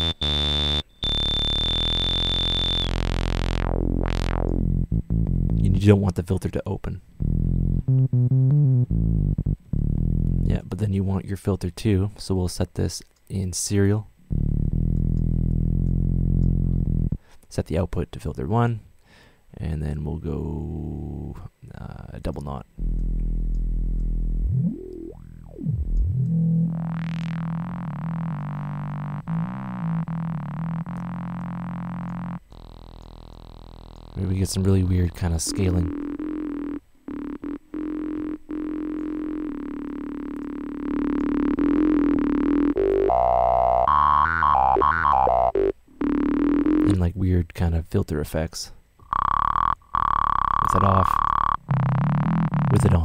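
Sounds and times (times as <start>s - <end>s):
bass-heavy synthesizer phrase: 0.0s - 1.3s, 2.7s - 6.0s, 7.2s - 10.6s, 14.3s - 17.1s, 22.8s - 32.8s, 34.0s - 47.0s, 49.1s - 53.0s.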